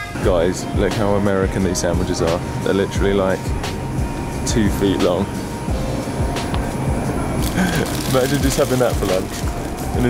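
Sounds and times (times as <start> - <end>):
hip-hop music with steady beat: 0.0 - 10.0.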